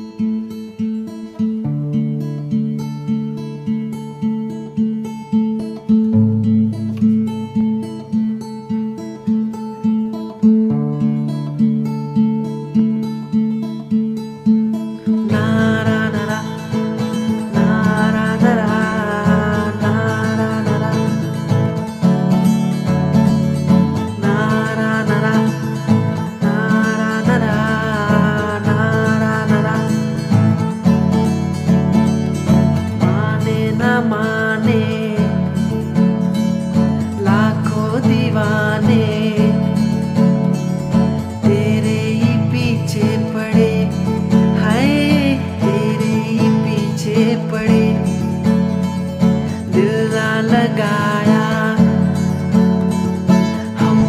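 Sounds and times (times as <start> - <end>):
acoustic guitar picking: 0.0 - 54.0
man singing: 15.1 - 31.2, 32.6 - 36.1, 37.1 - 40.1, 41.4 - 54.0.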